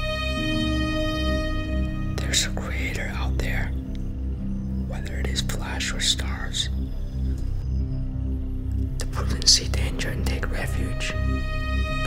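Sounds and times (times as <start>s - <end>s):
low pulsing music drone: 0.0s - 12.0s
person whispering: 2.2s - 3.9s, 4.9s - 6.8s, 9.0s - 11.3s.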